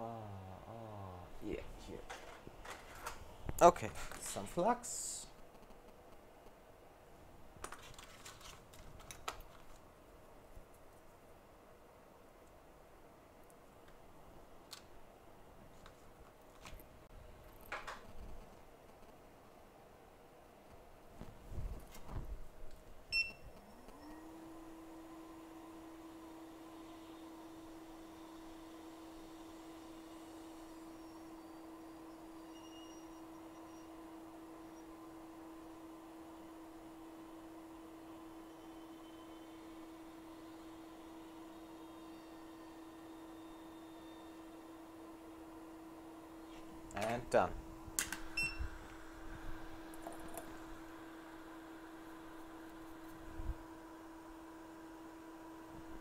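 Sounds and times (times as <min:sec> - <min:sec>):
fan spinning up hum: 0:00.0 - 0:10.5, 0:20.6 - 0:56.0.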